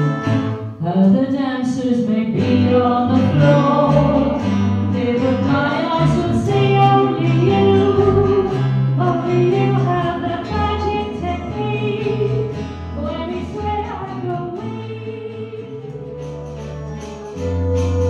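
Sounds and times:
acoustic guitar: 0.0s - 18.0s
bass line: 2.4s - 18.0s.

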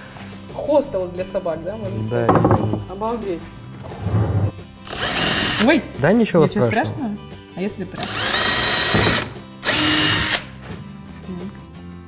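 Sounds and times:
cordless drill driving screw into wood: 4.8s - 5.7s, 8.0s - 10.5s.

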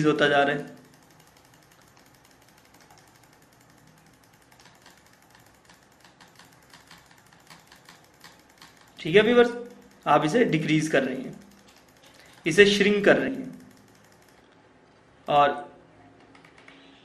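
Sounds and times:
rapid computer clicking: 0.0s - 15.0s, 16.2s - 16.9s.

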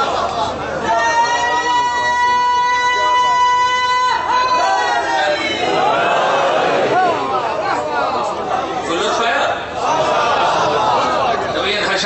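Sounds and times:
man speaking into microphone: 11.2s - 12.0s.

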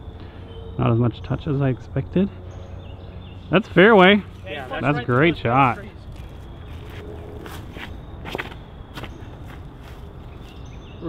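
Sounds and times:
footsteps on concrete: 6.1s - 10.7s.

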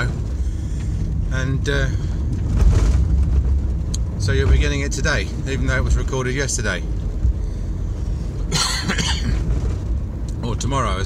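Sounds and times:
road and engine rumble in van: 0.0s - 11.0s
man coughing: 8.5s - 9.4s.

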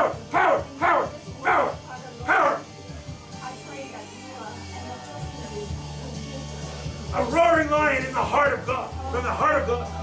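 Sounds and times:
faint music: 0.0s - 10.0s
person shouting a word in prayer: 0.3s - 2.6s.

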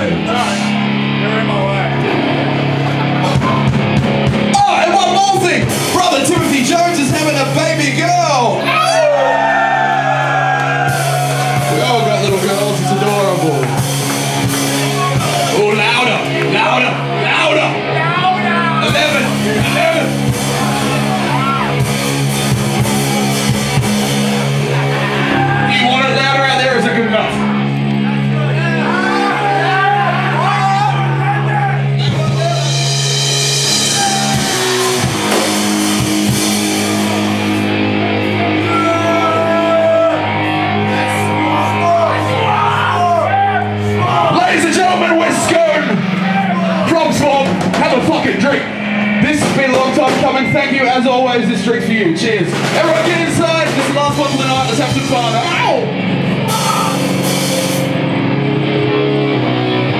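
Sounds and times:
heavy rock band playing: 0.0s - 59.9s
drum hits: 32.0s - 37.8s, 46.8s - 51.3s, 52.1s - 58.0s
vocalist shouting into microphone: 55.3s - 57.2s.

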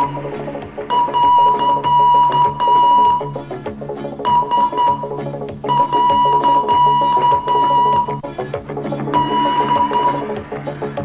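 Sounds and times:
morse code beeping: 0.0s - 0.3s, 0.9s - 3.4s, 4.2s - 8.2s, 9.1s - 10.4s
music with plucked strings: 0.0s - 11.0s.

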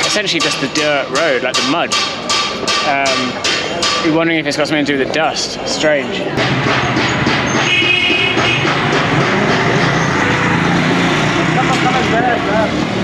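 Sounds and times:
background chatter of people: 0.0s - 13.0s
vehicle engine running: 6.4s - 13.0s.

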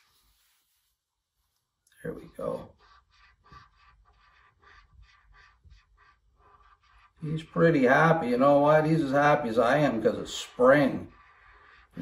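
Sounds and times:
marker scratching on paper: 2.0s - 12.0s.

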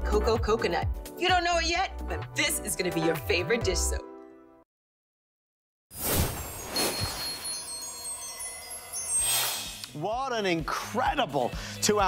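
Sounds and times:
high clear chime tones ringing: 6.6s - 9.6s.

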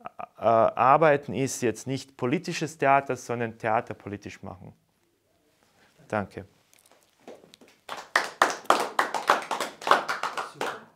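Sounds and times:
hands clapping: 7.2s - 10.9s.

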